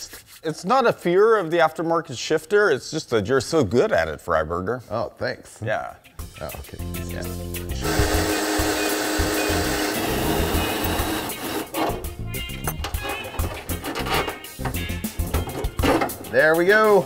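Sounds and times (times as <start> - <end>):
background music with bass beat: 6.2 - 9.8, 12.0 - 16.4
cordless drill bursts: 7.8 - 11.8
pneumatic hand tool running: 7.8 - 12.0.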